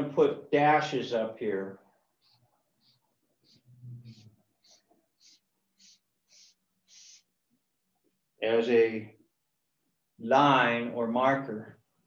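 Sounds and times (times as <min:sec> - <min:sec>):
marker drawing on paper: 0:01.8 - 0:07.7.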